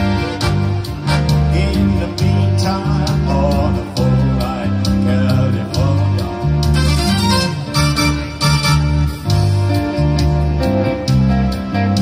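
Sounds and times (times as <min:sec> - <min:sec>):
live band playing: 0:00.0 - 0:12.0
low bass line: 0:00.0 - 0:12.0.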